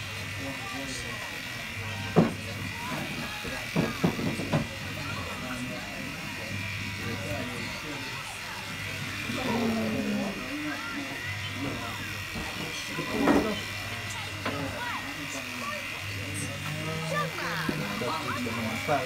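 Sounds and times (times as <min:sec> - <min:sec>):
electric hair clippers buzzing: 0:00.0 - 0:19.0.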